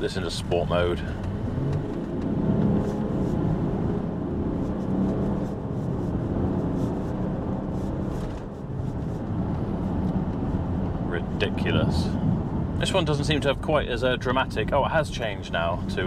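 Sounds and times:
car engine accelerating: 0:00.0 - 0:08.5
road noise inside car: 0:00.0 - 0:16.0.

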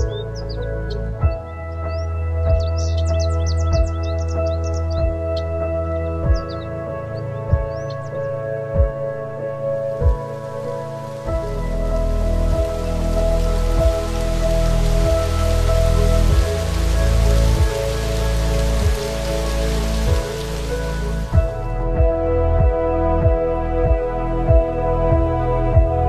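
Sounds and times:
calm background music: 0:00.0 - 0:26.0
rain-like hiss: 0:09.2 - 0:22.1.

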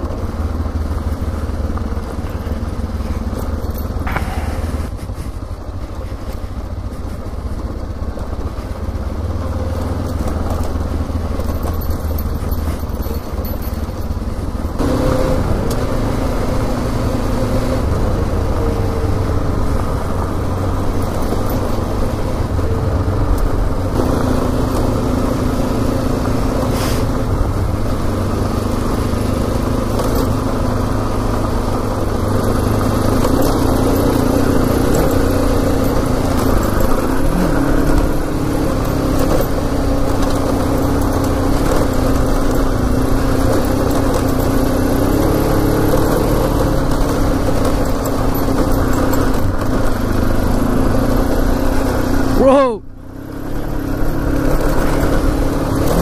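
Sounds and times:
motorcycle engine running: 0:00.0 - 0:56.0
wind and road noise rumbling: 0:00.0 - 0:56.0.

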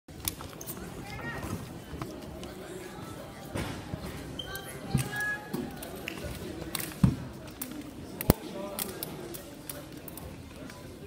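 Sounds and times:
shoe squeaks: 0:04.3 - 0:05.4.

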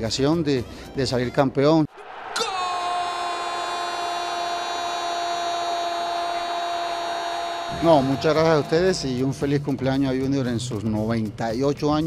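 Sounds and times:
steady held tones: 0:05.4 - 0:10.0.

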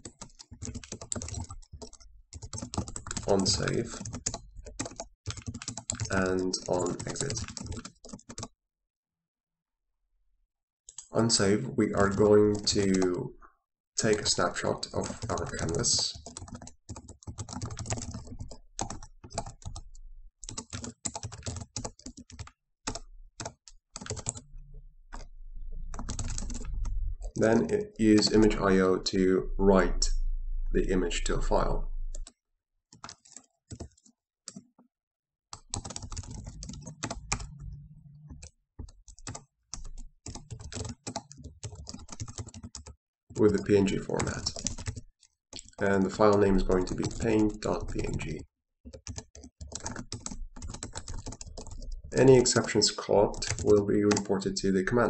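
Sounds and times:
typing on computer keyboard: 0:00.0 - 0:08.5, 0:12.0 - 0:13.1, 0:14.0 - 0:24.5, 0:25.1 - 0:28.6, 0:32.1 - 0:34.8, 0:35.5 - 0:55.0.

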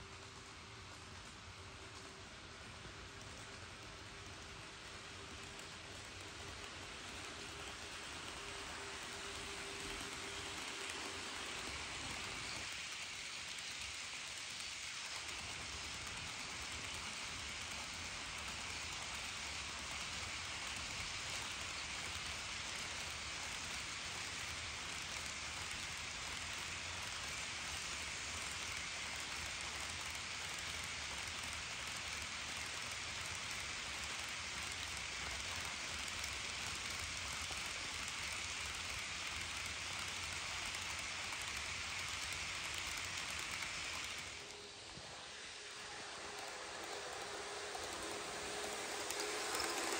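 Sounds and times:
model locomotive motor hum: 0:00.0 - 0:49.9
model train wheels clattering: 0:00.0 - 0:49.9.

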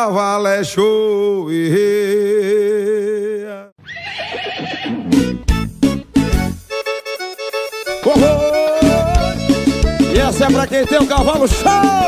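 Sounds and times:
horse whinnying: 0:03.8 - 0:05.3
music: 0:04.9 - 0:12.0.

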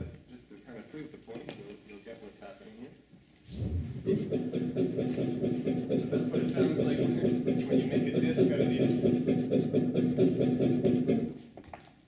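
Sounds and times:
steady low hum: 0:03.4 - 0:11.4
harsh pulsing garble: 0:03.5 - 0:11.3.

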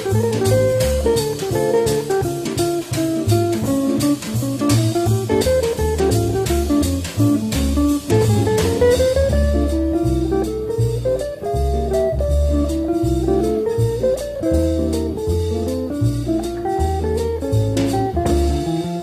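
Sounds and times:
drums: 0:00.0 - 0:19.0
electric guitar melody: 0:00.0 - 0:19.0
stepping bass line: 0:00.0 - 0:19.0.

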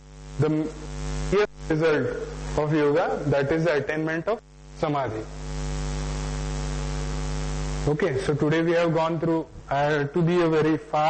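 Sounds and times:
constant hiss: 0:00.0 - 0:11.0
electrical mains hum: 0:00.0 - 0:11.0.

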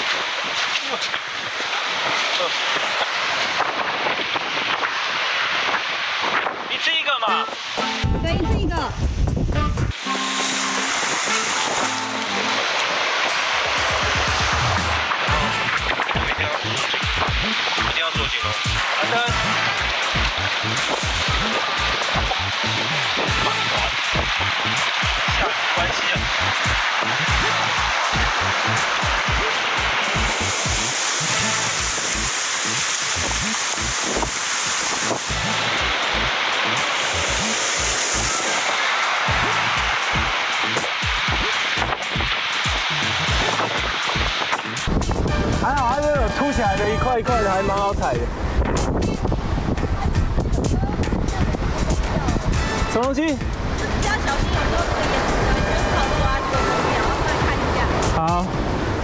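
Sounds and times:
sea surf rushing: 0:00.0 - 0:59.0
background music with low beat: 0:07.3 - 0:10.9, 0:13.7 - 0:38.4, 0:39.1 - 0:56.7.

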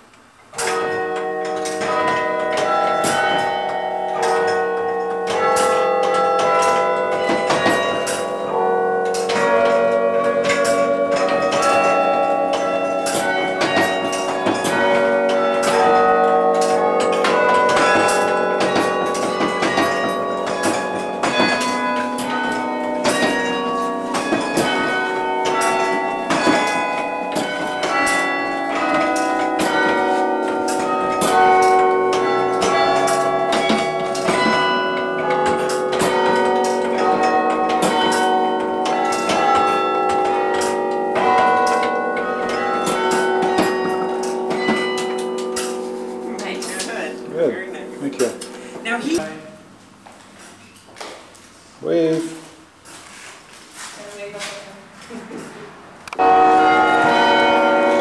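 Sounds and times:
carillon bells playing tune: 0:00.5 - 0:49.6, 0:56.1 - 0:58.0.

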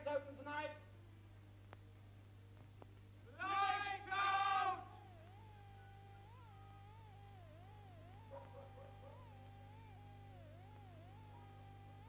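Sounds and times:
thin wavering tone: 0:04.6 - 0:12.0.

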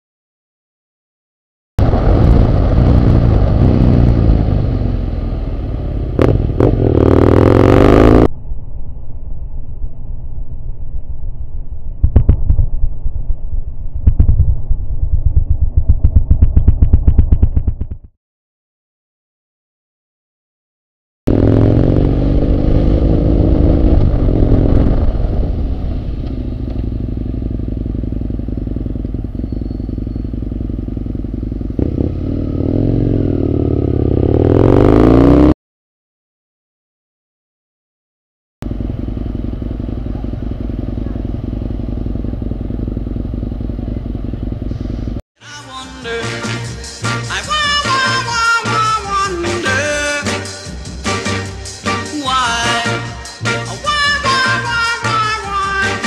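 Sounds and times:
motorcycle engine running at low revs: 0:01.8 - 0:08.6, 0:11.7 - 0:18.1, 0:21.3 - 0:35.6, 0:38.6 - 0:45.2
motorcycle engine idling: 0:26.2 - 0:34.3, 0:38.6 - 0:45.2.

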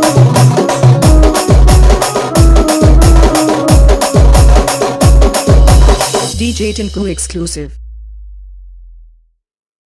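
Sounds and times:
deep electronic sub-bass tone: 0:06.3 - 0:09.4.

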